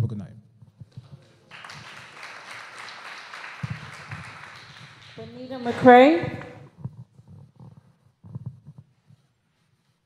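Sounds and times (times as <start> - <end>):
audience applauding: 1.2 - 6.6.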